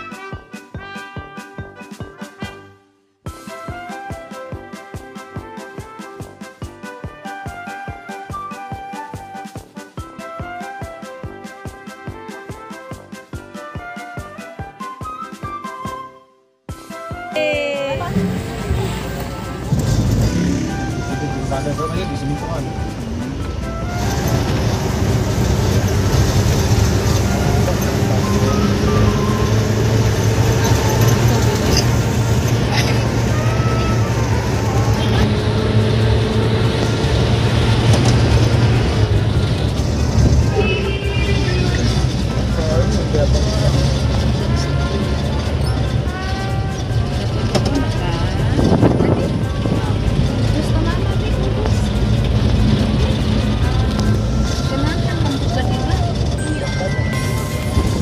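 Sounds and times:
music: 0.0s - 58.0s
voices: 17.4s - 58.0s
car engine and tyre rumble: 18.2s - 58.0s.

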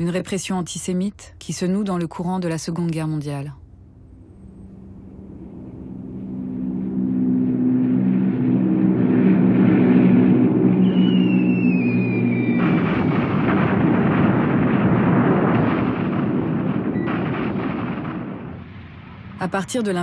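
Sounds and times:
bomber engines droning: 3.8s - 18.5s
bomb explosions rumbling: 4.1s - 20.0s
falling whistle of bombs: 10.6s - 19.2s.

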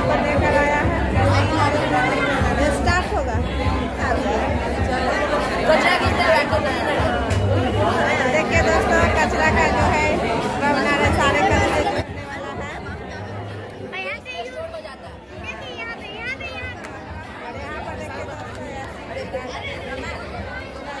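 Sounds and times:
children talking: 0.0s - 21.0s.

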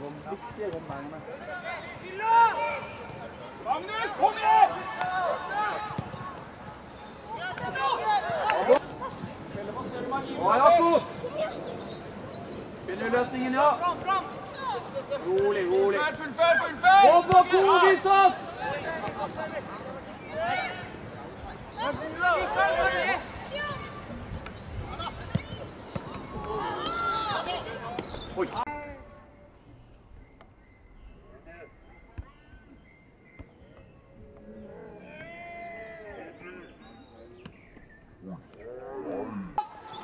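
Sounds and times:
voices shouting calls: 1.4s - 28.7s, 34.4s - 37.1s, 38.2s - 40.0s.

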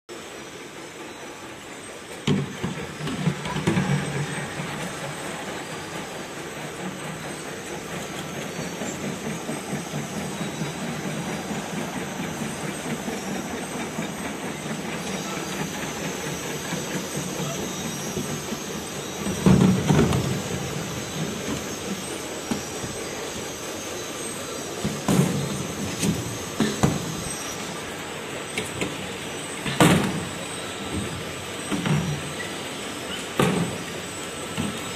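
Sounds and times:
filling line mechanical noise: 0.1s - 34.9s.

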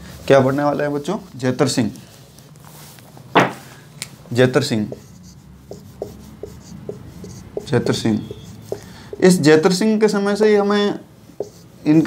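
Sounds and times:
marker pen writing on a whiteboard: 4.3s - 12.0s.

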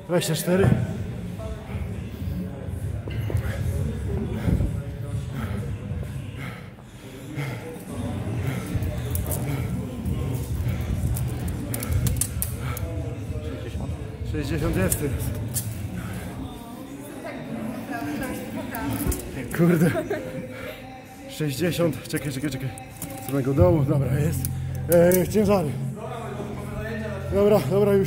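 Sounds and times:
background voices: 0.6s - 27.9s
music: 7.4s - 17.1s, 18.0s - 28.0s.

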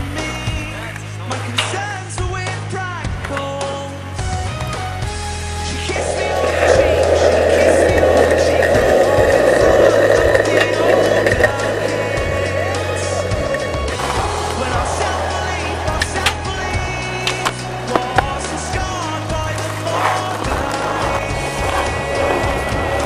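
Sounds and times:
background song: 0.0s - 23.0s
skateboard wheels rolling on concrete: 0.0s - 23.0s
skateboard clacks: 5.9s - 23.0s.

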